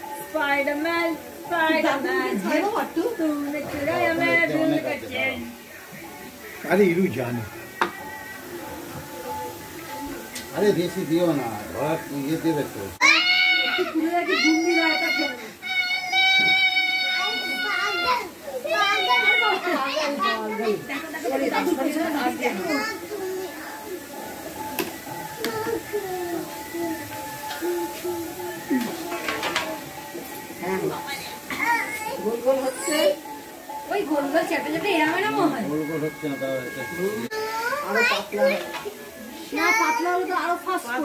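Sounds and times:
children calling and chattering: 0.0s - 41.0s.

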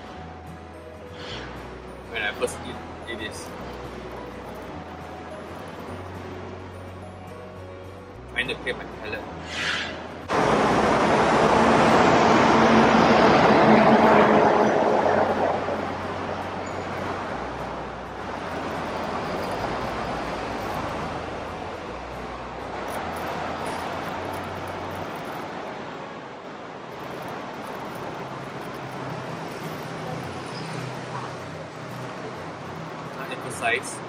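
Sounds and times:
passing traffic rush: 0.0s - 34.0s
traffic hum with low rumble: 0.0s - 34.0s.

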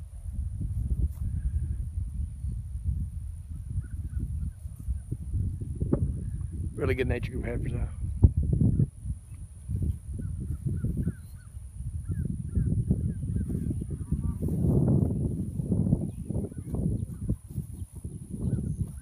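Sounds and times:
wind buffeting microphone: 0.0s - 19.0s
faint bird chirps: 8.7s - 14.5s.

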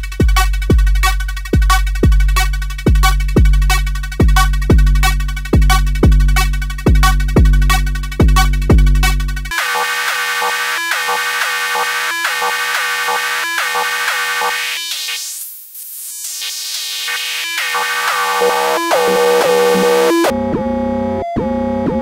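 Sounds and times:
deep kick drum: 1.5s - 9.0s.

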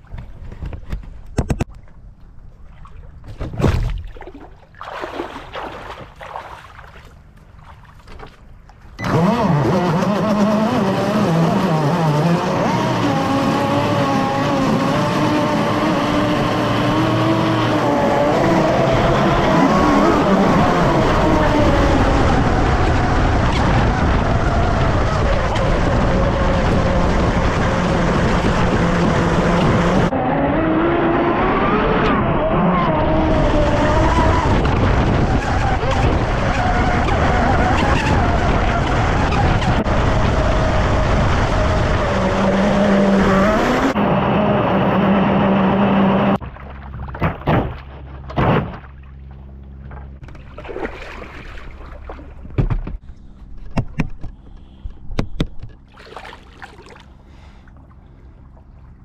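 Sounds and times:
wind: 0.0s - 59.0s
water rushing: 2.6s - 8.2s, 50.4s - 52.4s, 55.9s - 57.3s
rc boat motor whining: 9.0s - 44.0s.

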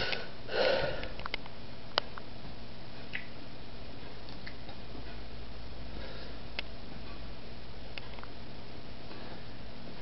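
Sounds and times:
low electrical hum: 0.0s - 10.0s
tape hiss: 0.0s - 10.0s.

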